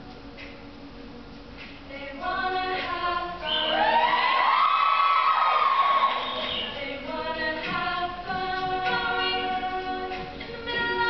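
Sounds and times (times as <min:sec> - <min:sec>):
women singing a cappella harmony: 0:01.9 - 0:11.0.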